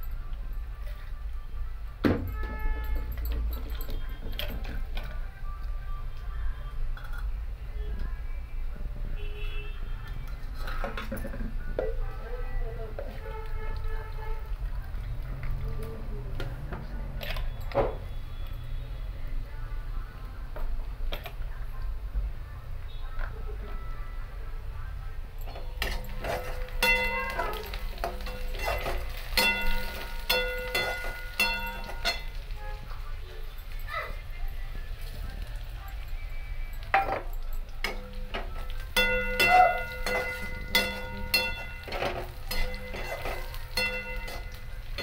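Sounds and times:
faint background music: 0.0s - 45.0s
voices: 2.9s - 45.0s
steel utensils clinking: 25.4s - 45.0s.

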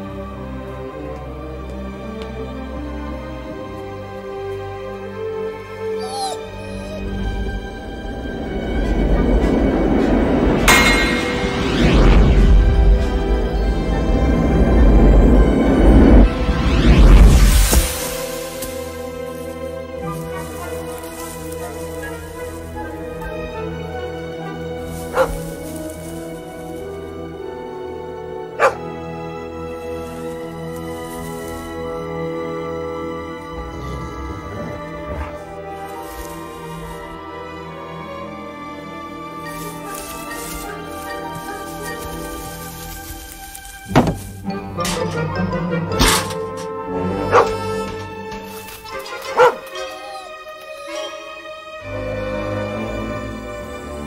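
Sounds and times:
background music: 0.0s - 54.0s
dog barking: 24.4s - 25.4s, 28.6s - 28.9s, 47.3s - 47.6s, 49.2s - 51.0s.

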